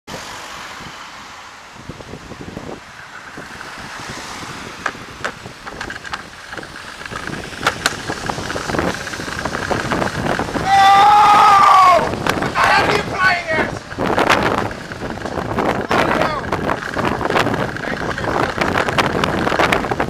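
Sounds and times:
road traffic: 0.0s - 20.0s
car passing close: 0.1s - 20.0s
wind noise: 0.1s - 20.0s.

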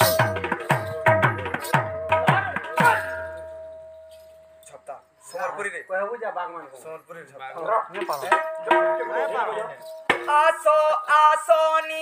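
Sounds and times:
barrel drum ringing: 0.0s - 4.6s, 8.2s - 10.5s.

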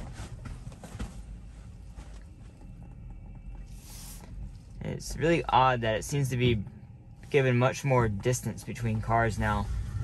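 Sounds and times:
car cabin rumble: 0.0s - 10.0s.

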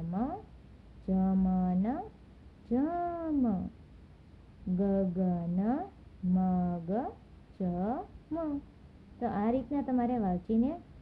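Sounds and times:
woman speaking slowly: 0.0s - 3.8s, 4.6s - 10.9s.

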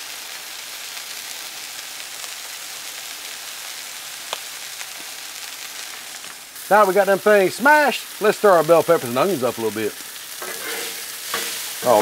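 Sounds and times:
food sizzling on a griddle: 0.0s - 12.0s.

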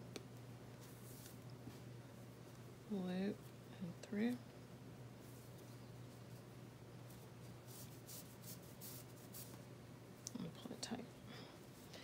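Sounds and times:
low steady hum: 0.0s - 12.0s
cord rustling by hand: 0.7s - 2.7s.

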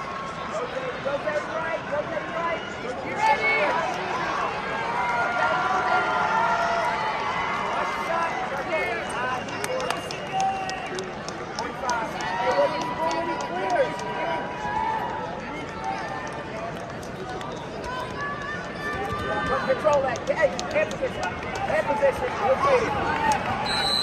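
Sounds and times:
shouts from the stands: 0.0s - 11.0s, 11.6s - 16.4s, 17.8s - 24.0s
crowd chatter: 0.0s - 24.0s
held call over crowd: 7.7s - 24.0s.

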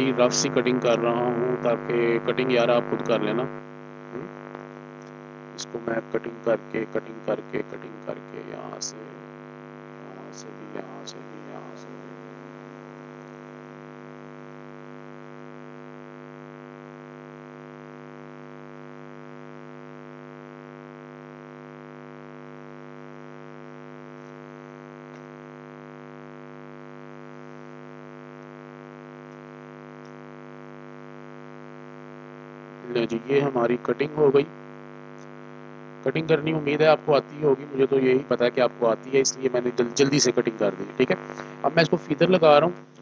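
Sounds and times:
steady electrical hum: 0.0s - 43.0s.

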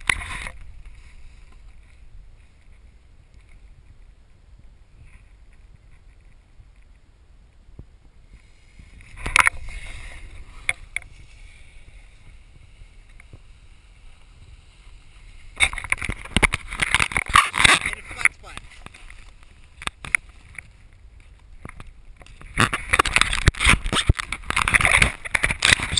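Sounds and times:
wind on microphone: 0.0s - 25.9s
snowboard scraping over snow: 8.2s - 16.7s.

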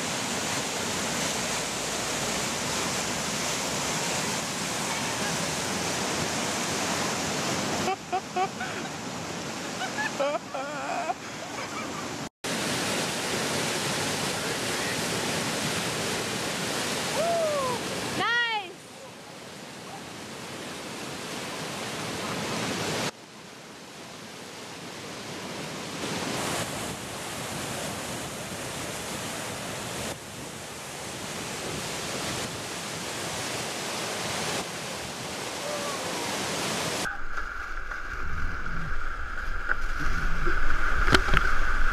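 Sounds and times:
whitewater rapids roaring: 0.0s - 19.2s, 26.0s - 41.9s.

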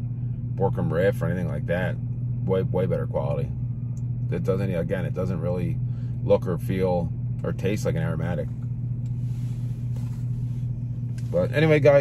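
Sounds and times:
car idling: 0.0s - 12.0s.

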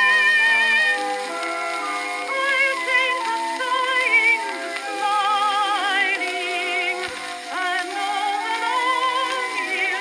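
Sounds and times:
woman singing with vibrato: 0.0s - 1.0s, 2.2s - 10.0s
instrumental accompaniment: 0.0s - 10.0s.

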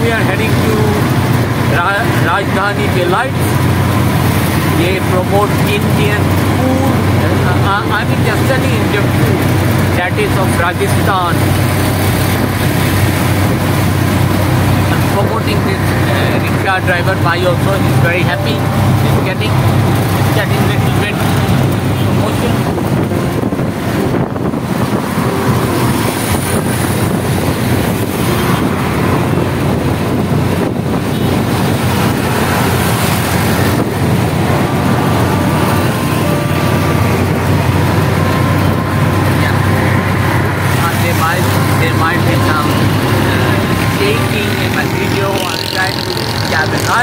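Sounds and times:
auto-rickshaw engine droning: 0.0s - 47.0s
road and wind noise: 0.0s - 47.0s.

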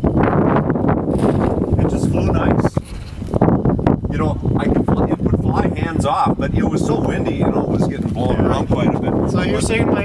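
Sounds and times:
gusty wind buffeting microphone: 0.0s - 10.0s.

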